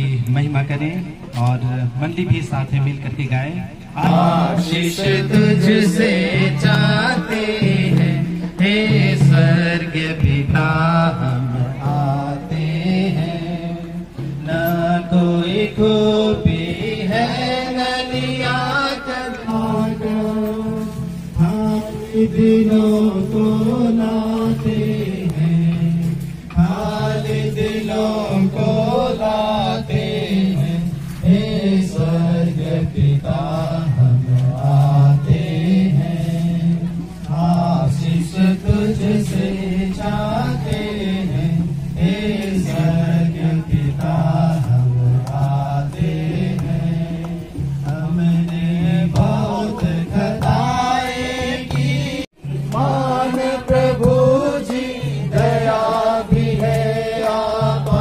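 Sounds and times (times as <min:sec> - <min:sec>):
congregation singing a hymn: 0:04.0 - 0:58.0.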